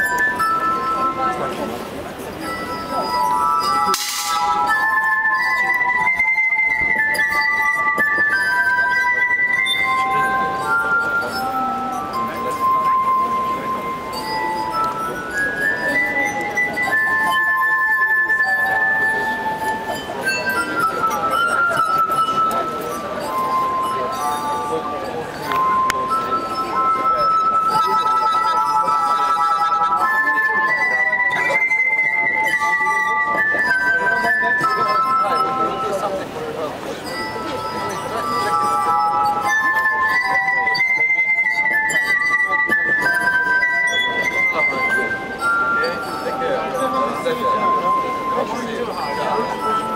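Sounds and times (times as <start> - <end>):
glass harp melody: 0.0 - 49.9.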